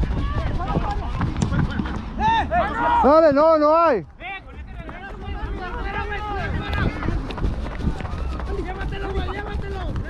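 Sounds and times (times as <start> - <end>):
players shouting: 0.0 - 7.2
running footsteps on grass: 0.0 - 10.0
low microphone rumble: 4.0 - 10.0.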